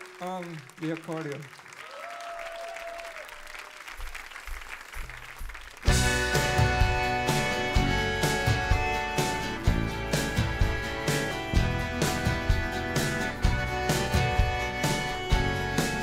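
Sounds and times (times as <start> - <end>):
audience applause: 0.0 - 6.8
band with accordion playing: 5.9 - 16.0.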